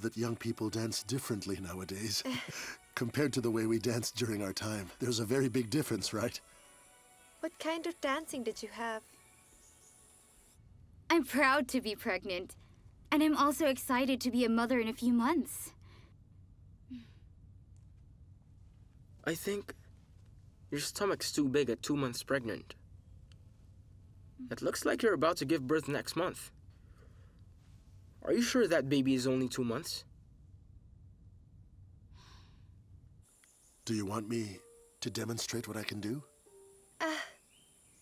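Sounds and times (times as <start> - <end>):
man speaking: 0.0 - 2.3, 3.0 - 6.4, 19.2 - 19.8, 20.7 - 22.8, 24.4 - 26.5, 28.2 - 30.0, 33.9 - 36.3
low steady hum: 0.0 - 38.0
faint breath out: 32.1 - 32.8.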